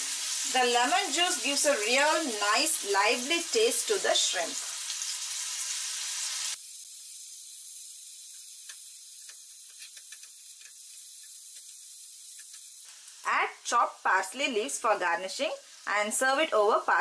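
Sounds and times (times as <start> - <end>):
shrimp sizzling in a frying pan: 0.0 - 17.0.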